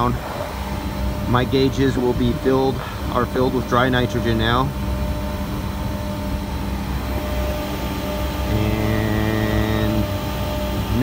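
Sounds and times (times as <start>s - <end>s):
deep motor hum: 0.0s - 11.0s
machinery humming: 0.0s - 11.0s.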